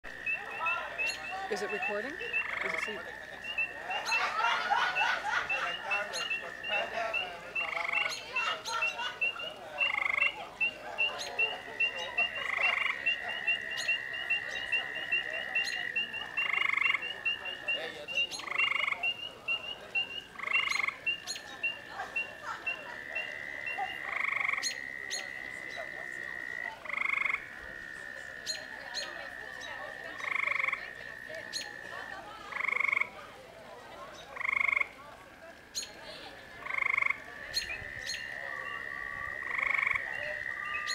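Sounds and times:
frog short call: 0.1s - 4.4s, 5.0s - 33.1s
frog high trill: 0.1s - 17.8s.

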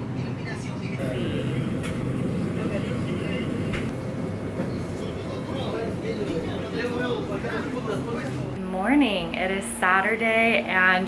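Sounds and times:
indistinct background voices: 0.9s - 3.9s
low hum and rumble: 0.9s - 7.8s.

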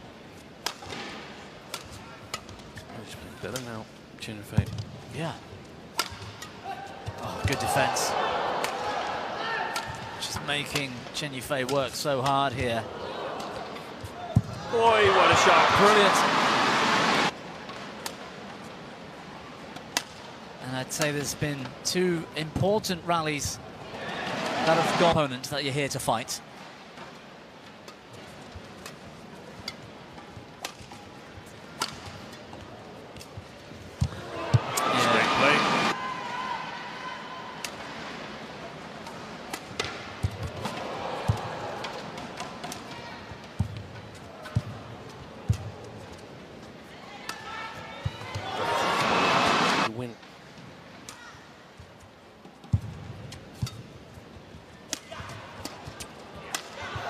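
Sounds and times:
racket striking shuttlecock: 5.9s - 6.5s
crowd cheering: 7.1s - 10.2s, 14.6s - 17.3s, 23.9s - 25.2s, 34.2s - 37.8s, 40.6s - 42.2s, 47.3s - 49.9s.

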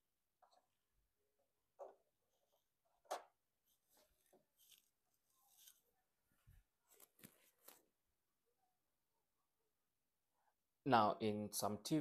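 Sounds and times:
plastic rustles: 3.7s - 7.9s.

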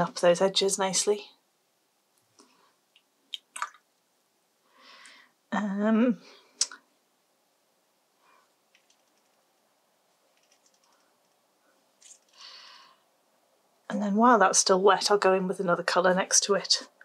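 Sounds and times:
soft breath: 4.6s - 5.4s, 10.9s - 13.2s.

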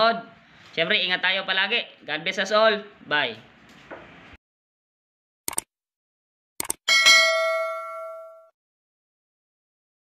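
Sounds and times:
notification bell ding: 6.9s - 8.6s.

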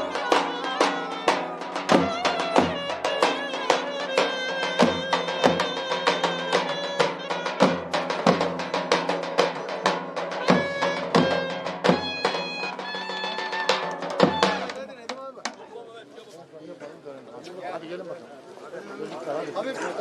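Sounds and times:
violin and clarinet folk tune: 0.0s - 8.0s, 10.4s - 14.8s
crowd chatter: 0.0s - 20.0s.

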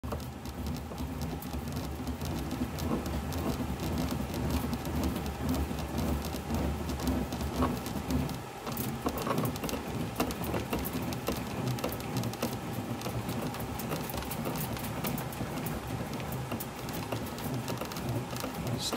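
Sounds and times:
bat crackling in rolling machine: 0.0s - 18.9s.

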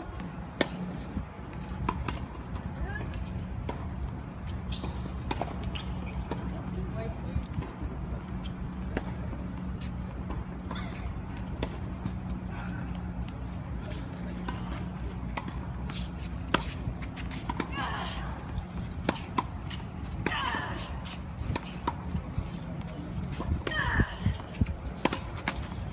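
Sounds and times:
tennis ball bouncing on hard court: 0.6s - 3.9s, 4.7s - 6.6s, 14.3s - 22.2s, 23.3s - 25.8s
tennis ball hit by rackets: 14.4s - 18.0s, 18.7s - 22.2s, 23.4s - 25.9s.

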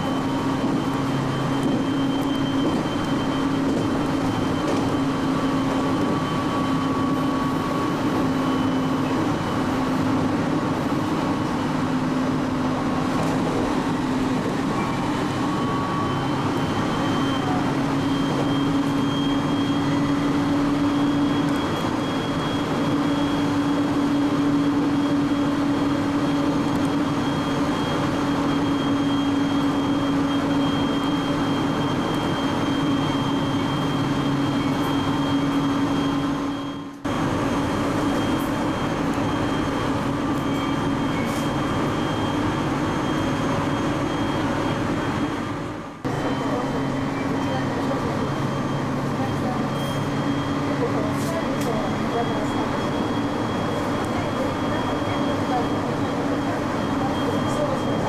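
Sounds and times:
train running noise: 0.0s - 58.0s.

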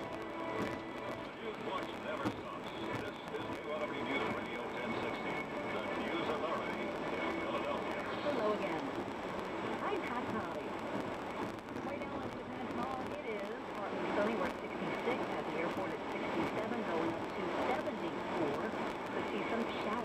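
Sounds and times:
muffled radio news talk: 0.0s - 20.0s.

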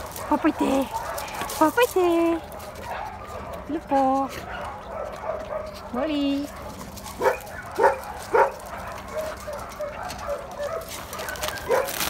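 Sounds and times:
dog barking: 0.0s - 1.6s, 2.5s - 12.0s.

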